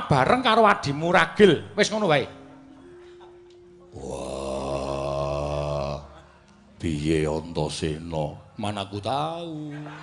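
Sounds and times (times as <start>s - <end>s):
man groaning in deep voice: 3.9s - 6.2s.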